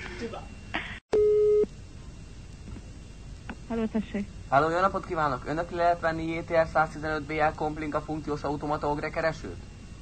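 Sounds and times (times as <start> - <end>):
phone line hiss: 1.1 - 1.7
telephone line beep: 1.2 - 1.7.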